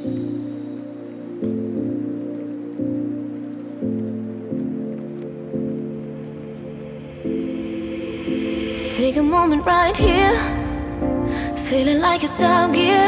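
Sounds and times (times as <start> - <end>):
soft low background music chords: 0.0 - 13.0.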